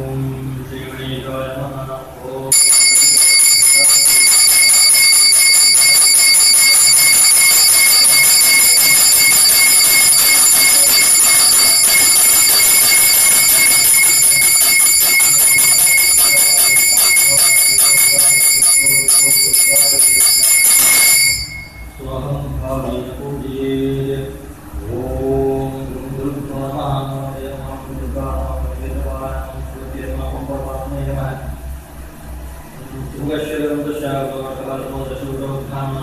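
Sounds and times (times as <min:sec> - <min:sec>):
hand bell ringing rapidly: 0:02.5 - 0:22.0.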